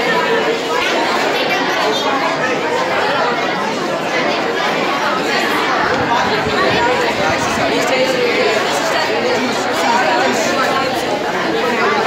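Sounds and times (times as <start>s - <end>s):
crowd of students chattering: 0.0s - 12.0s.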